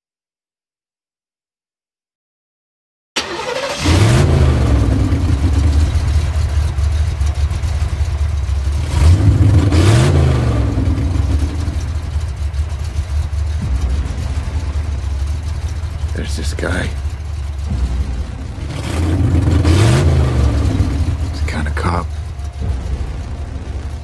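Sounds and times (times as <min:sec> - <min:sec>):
engine revving: 0:03.2 - 0:24.0
steady low rumble: 0:04.1 - 0:24.0.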